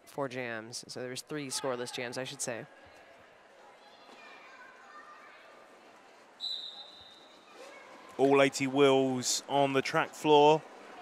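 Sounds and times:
murmur of voices in a hall: 0.8 - 11.0
referee's whistle blast: 6.4 - 7.2.

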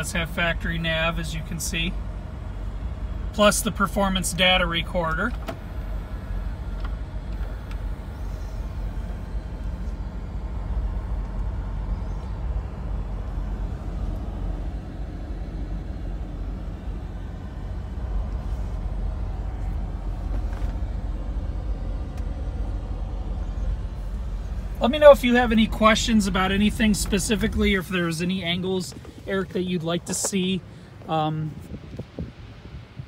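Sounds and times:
low rumble inside car: 0.0 - 33.0.

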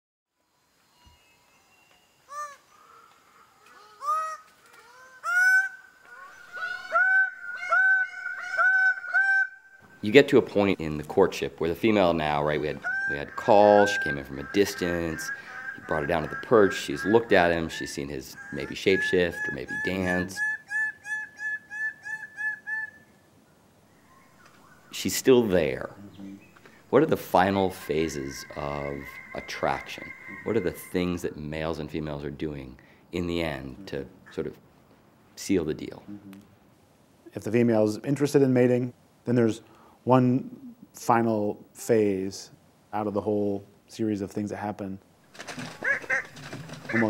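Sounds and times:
bird advertising calls: 2.3 - 10.9, 11.9 - 23.2, 23.9 - 31.5, 45.4 - 47.0.

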